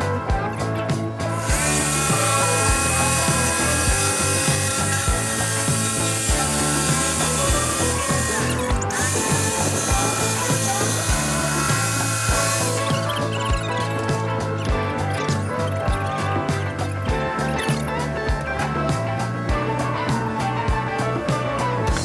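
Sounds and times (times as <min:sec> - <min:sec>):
power tool motor whine: 0:00.0 - 0:19.7.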